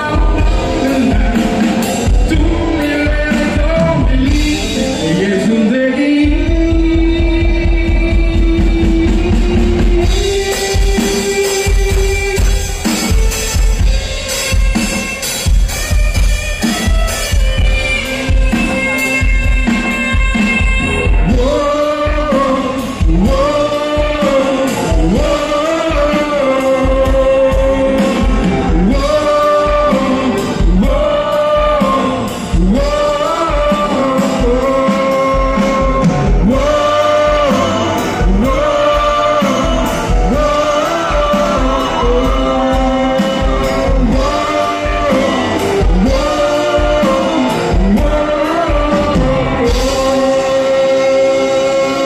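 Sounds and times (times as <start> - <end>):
live rock band playing: 0.0 - 52.0
person singing: 0.0 - 52.0
steady drum beat: 0.0 - 52.0
vocals: 0.0 - 52.0.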